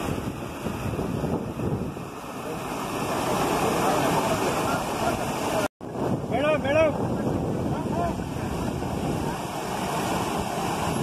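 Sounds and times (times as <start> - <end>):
water gushing from pipes: 0.0 - 11.0
voices calling out: 2.4 - 5.7.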